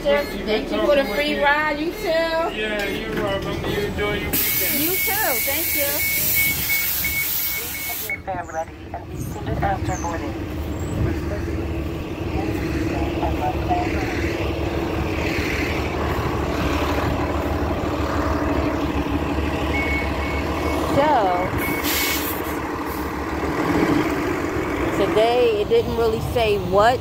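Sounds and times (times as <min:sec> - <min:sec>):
bus engine rumbling: 0:00.0 - 0:27.0
short high beeps: 0:04.4 - 0:08.3, 0:19.7 - 0:22.2
air hiss: 0:05.6 - 0:08.1, 0:21.8 - 0:22.6.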